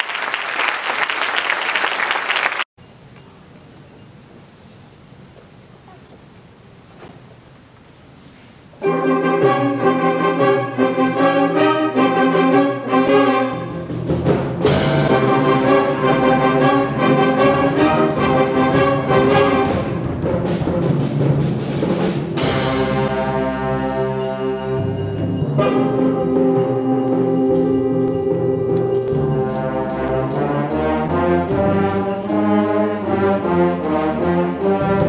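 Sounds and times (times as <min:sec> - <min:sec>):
concert band playing chords: 0:08.8 - 0:35.0.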